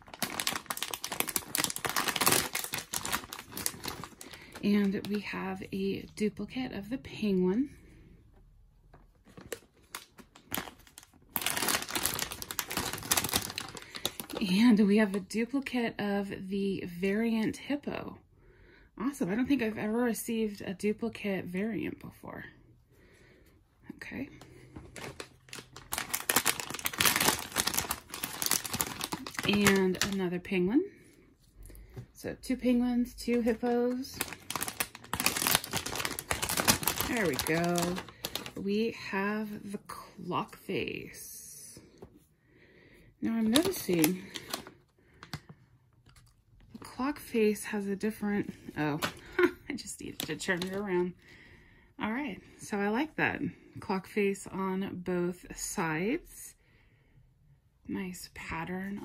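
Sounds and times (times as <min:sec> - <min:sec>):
foil bag crinkling: 0:00.0 - 0:05.4, 0:09.2 - 0:14.6, 0:24.6 - 0:30.2, 0:33.3 - 0:38.7, 0:43.4 - 0:46.3, 0:48.6 - 0:51.1.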